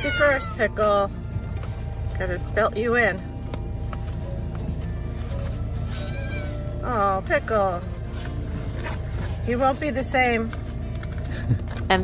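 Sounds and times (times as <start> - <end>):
kitten meowing: 0.0 - 0.7, 6.0 - 6.6.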